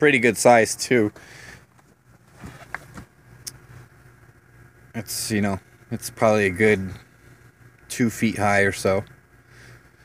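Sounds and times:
truck engine idling hum: 0.0 - 10.0.

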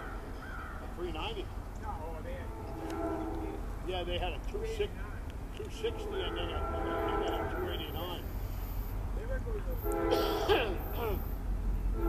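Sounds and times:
bird calls: 0.0 - 3.6
steady low rumble: 0.0 - 12.0
people's voices: 0.8 - 11.4.

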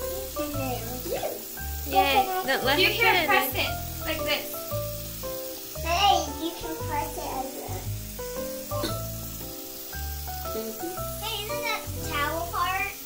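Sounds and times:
background music: 0.0 - 13.0
bath bombs fizzing: 0.0 - 13.0
tap water running into sink: 0.0 - 13.0
children's voices: 5.8 - 7.9, 11.2 - 13.0.

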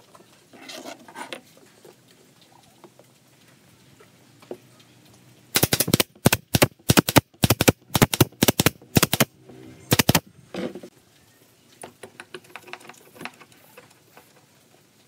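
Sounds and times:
pneumatic nailer firing: 5.5 - 9.3, 9.9 - 10.2.

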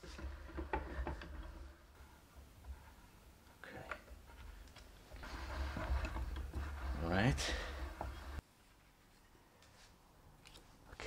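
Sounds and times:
wooden screw press rubbing and scraping: 0.0 - 8.4.

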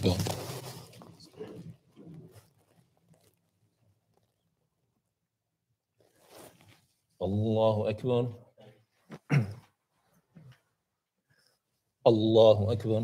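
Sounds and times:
clothing rustling and shuffling: 0.0 - 4.2, 6.0 - 7.1.

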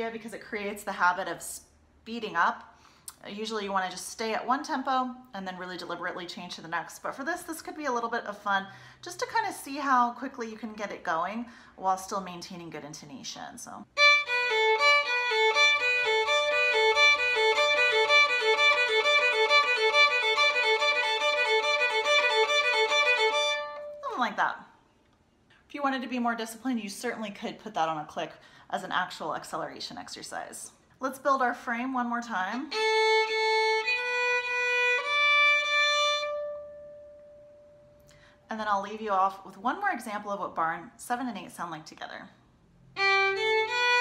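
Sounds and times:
violin bowing exercise: 14.0 - 24.1, 32.7 - 37.9, 43.0 - 44.0.

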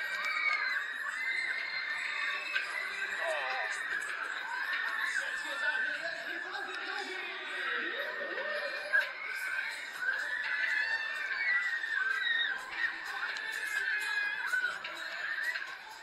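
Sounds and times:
people screaming and laughing: 0.0 - 16.0.

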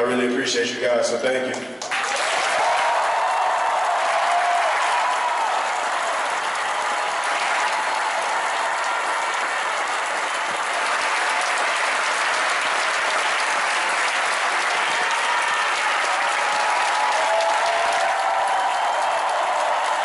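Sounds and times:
crowd applauding: 1.8 - 20.0.

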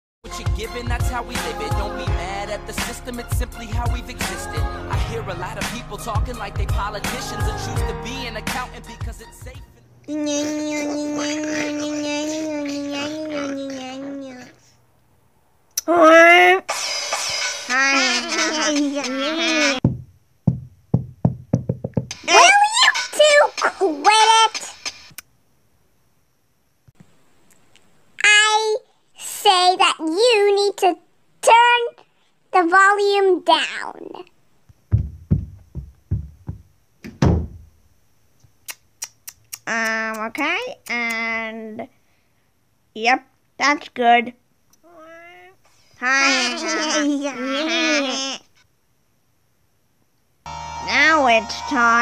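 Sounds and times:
heavy knocking on door: 19.8 - 22.1, 34.9 - 37.8.

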